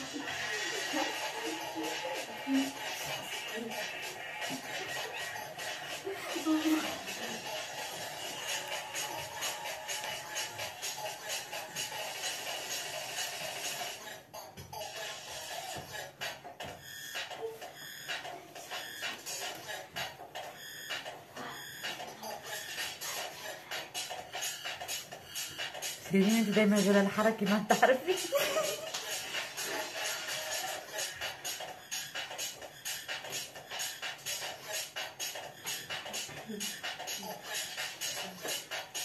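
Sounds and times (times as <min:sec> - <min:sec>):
dance music with steady beat: 0:00.0 - 0:39.0.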